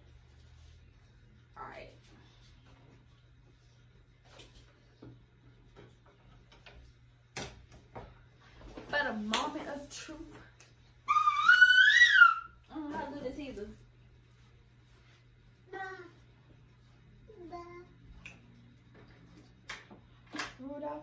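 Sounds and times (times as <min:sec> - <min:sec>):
high-pitched squealing voice: 0:11.1 - 0:12.6.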